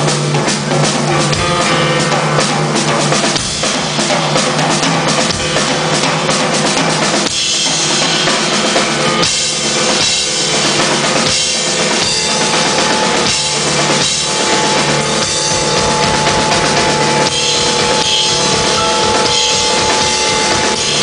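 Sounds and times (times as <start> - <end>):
drum kit played hard: 0.0 - 21.0.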